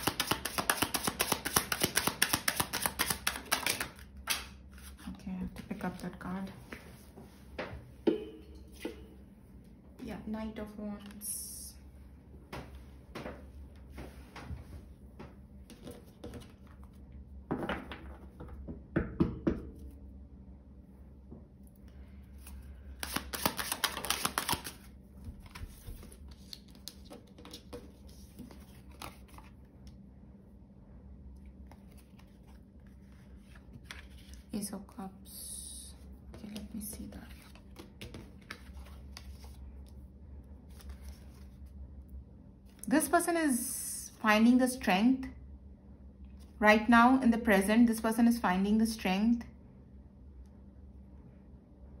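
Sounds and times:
cards shuffling: 0.0s - 5.0s, 22.4s - 29.6s, 31.6s - 34.5s, 36.4s - 39.6s, 40.7s - 41.7s
woman speaking quietly: 5.0s - 6.6s.

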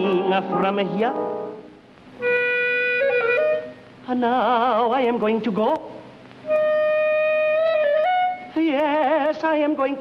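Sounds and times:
clarinet holding a long note: 2.2s - 3.8s, 6.5s - 8.5s.

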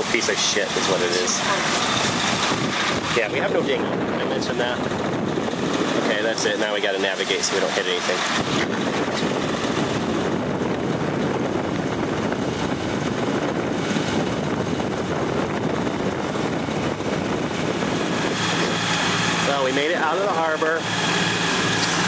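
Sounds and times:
person speaking: 0.0s - 2.0s
low engine hum: 0.0s - 22.0s
wind over microphone: 0.0s - 22.0s.

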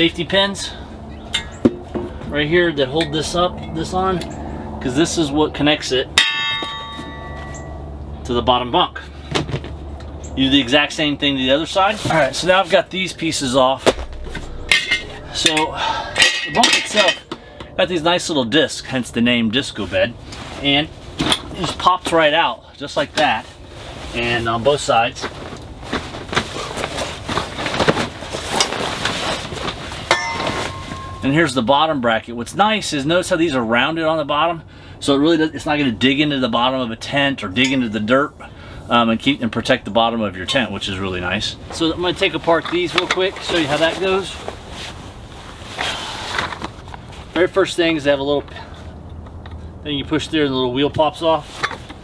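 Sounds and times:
metal clang ringing: 6.2s - 7.9s, 13.9s - 17.3s, 30.1s - 31.4s.

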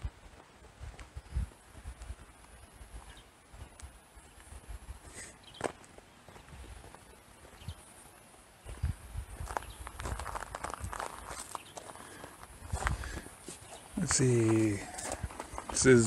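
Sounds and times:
footsteps walking: 5.6s - 7.7s, 8.7s - 16.0s.

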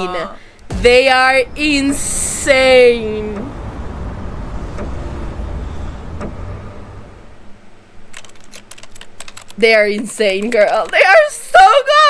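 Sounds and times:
low rumbling drone: 0.6s - 7.8s
sharp clicks: 8.1s - 11.2s.

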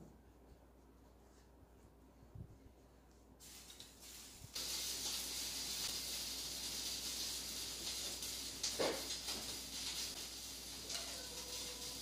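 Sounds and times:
steady high hiss: 3.4s - 12.0s.

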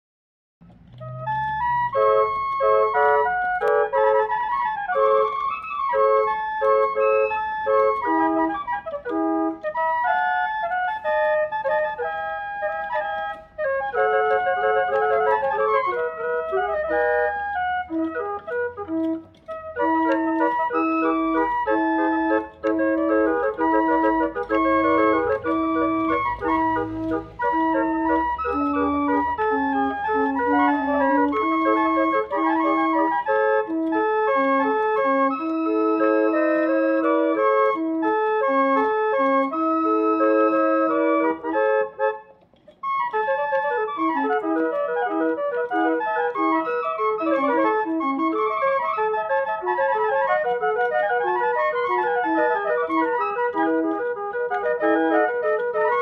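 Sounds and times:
barrel organ playing a tune: 0.6s - 56.0s.

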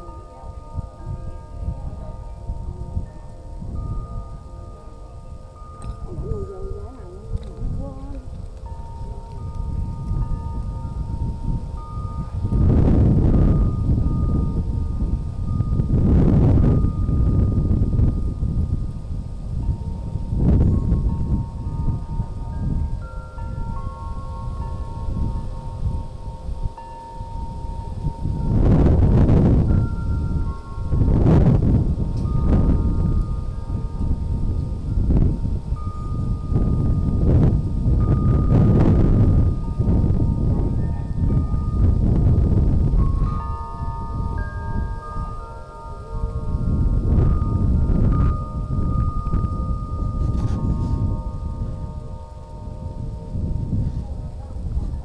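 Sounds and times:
wind buffeting microphone: 0.0s - 55.0s
wind chimes ringing: 0.0s - 55.0s.

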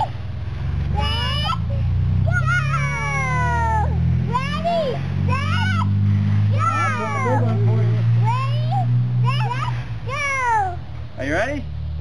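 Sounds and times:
young children squealing: 2.3s - 5.9s, 6.5s - 7.4s.

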